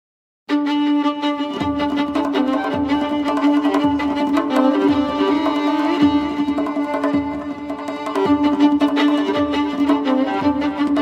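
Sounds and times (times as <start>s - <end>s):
solo violin melody with drone: 0.5s - 11.0s.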